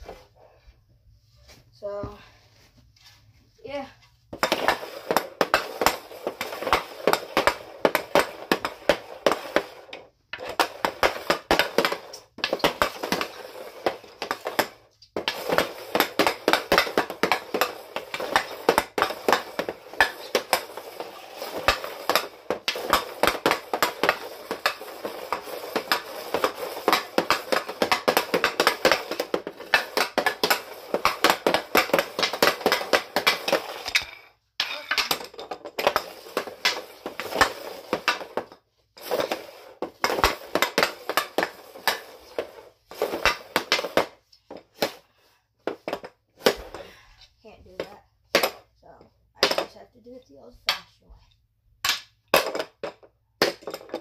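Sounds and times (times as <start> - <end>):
stick tapping plastic floor tiles: 4.3 - 47.0, 47.6 - 54.0
hockey stick clacking on puck: 4.4 - 45.0.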